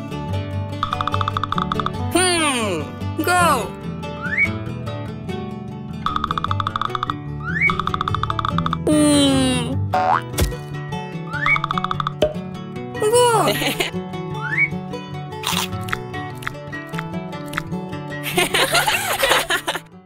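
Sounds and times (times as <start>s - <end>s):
cartoon background music: 0.7s - 4.8s, 6.0s - 19.9s
rising whistle-like chirps: 4.2s - 4.5s
springy boing: 6.1s - 8.9s, 9.9s - 10.4s.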